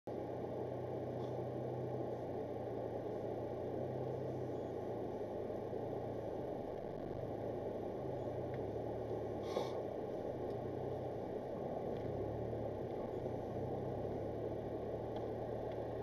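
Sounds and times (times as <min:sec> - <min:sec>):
car engine and road noise: 0:00.1 - 0:16.0.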